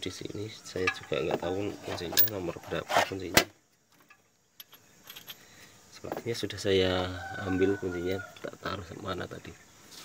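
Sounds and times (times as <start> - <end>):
metallic clinks of wrenches: 4.6 - 5.5.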